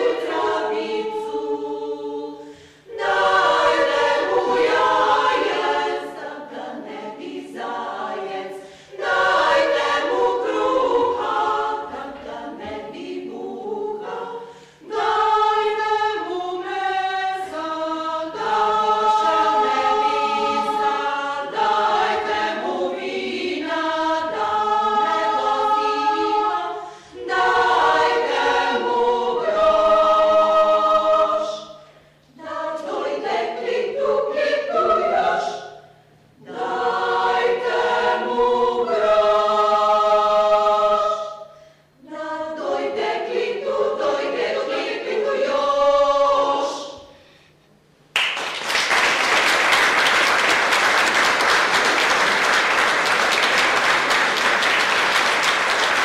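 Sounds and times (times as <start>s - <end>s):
women's choir singing: 0.0s - 47.3s.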